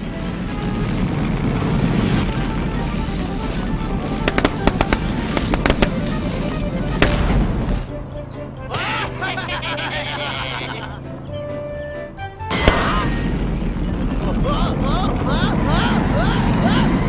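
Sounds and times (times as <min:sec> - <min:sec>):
sharp cracks or pops: 0:01.4 - 0:07.9, 0:12.5 - 0:14.2
cartoon music: 0:04.2 - 0:13.3
dense noisy sound effect: 0:12.5 - 0:17.0.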